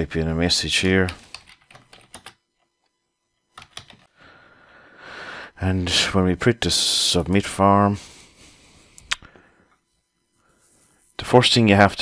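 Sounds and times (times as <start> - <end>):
keyboard typing: 0.9 - 2.4, 3.5 - 4.1.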